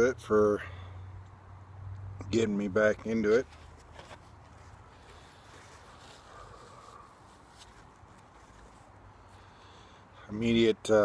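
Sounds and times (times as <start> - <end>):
quiet outdoor background: 0.0 - 11.0.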